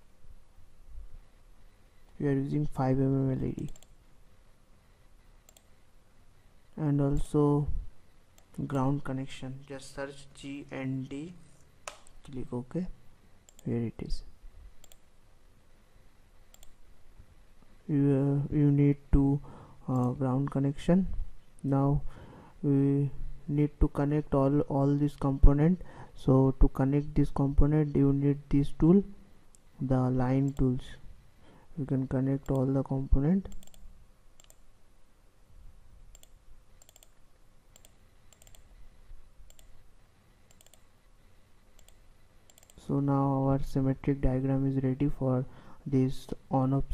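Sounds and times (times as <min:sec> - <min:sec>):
computer mouse button clicking: 0:03.6 - 0:04.0, 0:05.5 - 0:05.7, 0:11.9 - 0:12.2, 0:16.5 - 0:16.8, 0:33.5 - 0:33.8, 0:34.4 - 0:34.6, 0:36.1 - 0:37.2, 0:37.8 - 0:38.7, 0:39.5 - 0:39.7, 0:40.5 - 0:40.8, 0:41.8 - 0:42.8
computer mouse button clicks: 0:16.5 - 0:16.8, 0:33.5 - 0:33.8, 0:34.4 - 0:34.6, 0:36.1 - 0:37.2.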